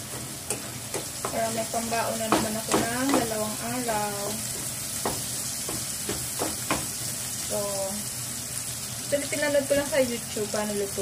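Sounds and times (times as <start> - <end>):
spatula scraping and knocking pan: 0.0 - 3.8, 4.4 - 7.0
meat and onions sizzling in oil: 0.0 - 11.0.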